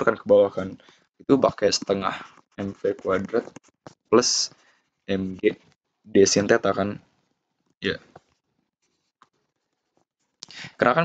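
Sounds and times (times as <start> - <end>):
stylus scratching on tablet screen: 0.3 - 7.3, 8.0 - 10.4.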